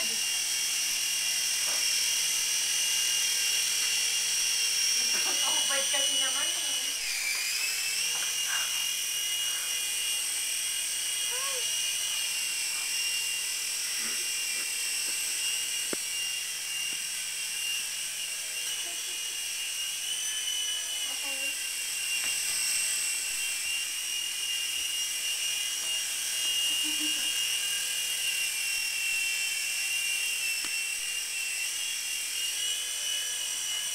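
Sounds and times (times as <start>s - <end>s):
toy helicopter motors whining: 0.0s - 33.9s.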